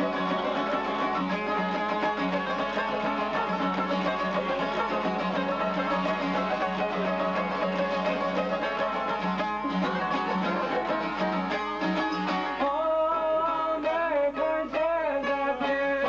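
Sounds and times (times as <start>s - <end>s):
plucked lute melody: 0.0s - 16.0s
man singing: 12.6s - 16.0s.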